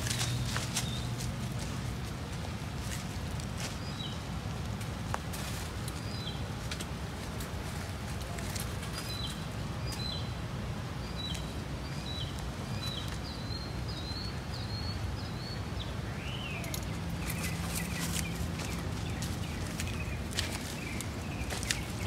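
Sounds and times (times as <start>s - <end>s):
small birds chirping: 0.0s - 22.0s.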